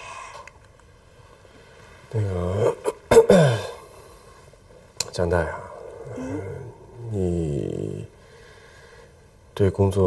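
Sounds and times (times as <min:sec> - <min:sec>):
man sighing: 0:06.0 - 0:07.2.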